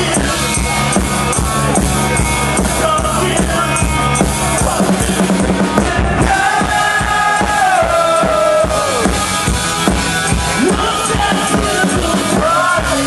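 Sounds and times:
drums steady beat: 0:00.0 - 0:13.0
live rock band playing: 0:00.0 - 0:13.0.

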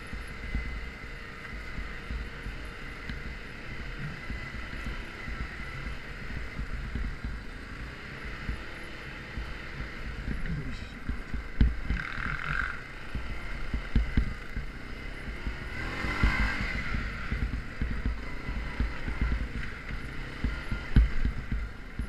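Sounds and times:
knocks over bumps: 0:00.0 - 0:22.0
quad bike engine rumble: 0:00.0 - 0:22.0.

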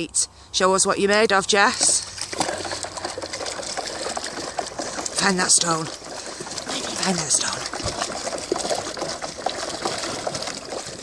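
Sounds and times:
dog rattling and scuffling in plastic tub: 0:01.6 - 0:11.0.

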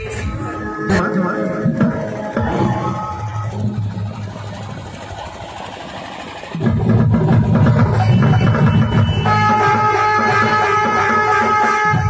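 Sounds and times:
bass-heavy music with drums: 0:00.0 - 0:04.8, 0:06.6 - 0:12.0
crowd noise: 0:00.0 - 0:12.0.

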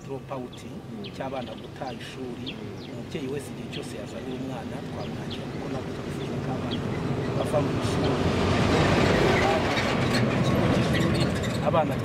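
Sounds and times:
truck driving past on dirt road: 0:06.0 - 0:12.0.

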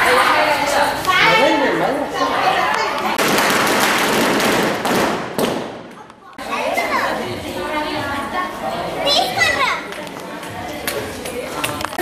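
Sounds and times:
children shouting and chattering: 0:00.0 - 0:03.2, 0:05.8 - 0:12.0.

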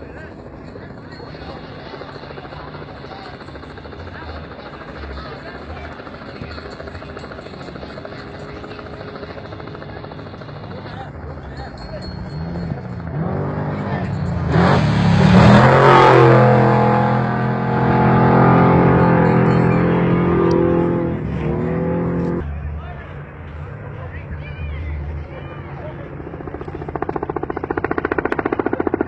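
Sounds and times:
race vehicle engine passing: 0:12.3 - 0:28.7.

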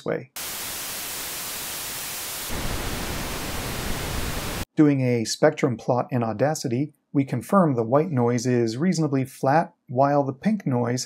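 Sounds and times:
white noise hiss: 0:00.4 - 0:04.6
pink noise: 0:00.4 - 0:04.7.

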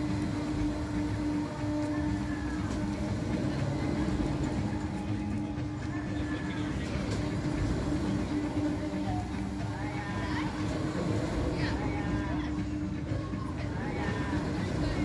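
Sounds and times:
amusement ride mechanical hum: 0:00.0 - 0:15.0.

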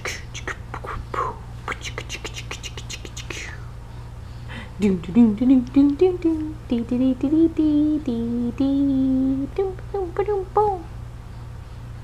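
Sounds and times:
woman making whispered breathy sounds: 0:00.0 - 0:03.8.

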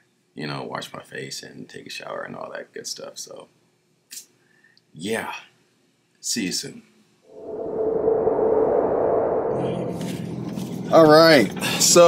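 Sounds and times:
whoosh: 0:07.3 - 0:11.1.

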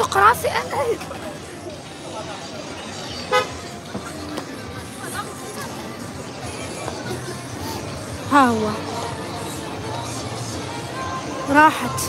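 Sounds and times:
busy street noise: 0:00.0 - 0:12.0
car horn toot: 0:03.3 - 0:03.6.

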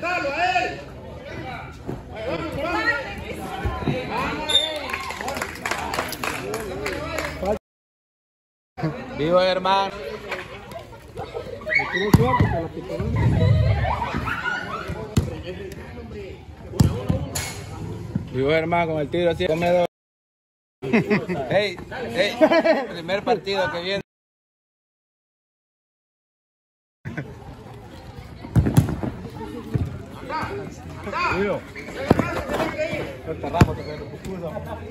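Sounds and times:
players' voices: 0:00.0 - 0:07.6, 0:08.8 - 0:19.9, 0:27.1 - 0:34.9.

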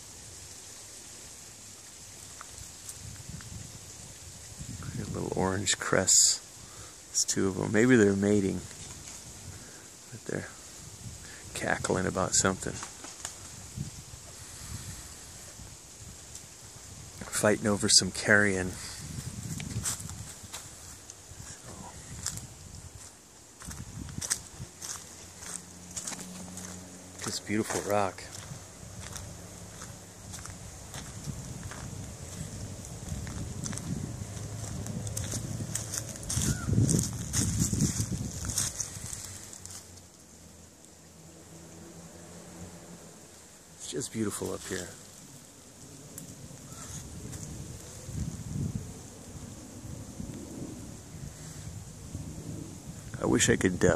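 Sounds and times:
wind hiss and rustling: 0:00.0 - 0:53.9
footsteps crunching through dry leaves: 0:18.6 - 0:40.2, 0:46.2 - 0:49.1
low microphone rumble: 0:18.7 - 0:39.7.

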